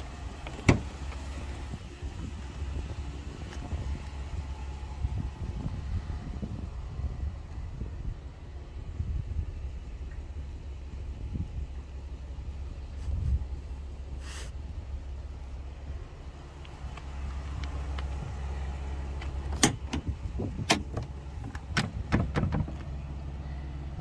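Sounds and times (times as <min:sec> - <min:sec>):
vehicle rumble: 0:00.0 - 0:24.0.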